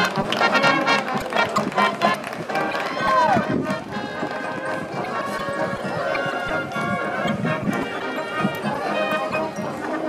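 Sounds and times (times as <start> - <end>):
marching band playing: 0.0 - 10.0.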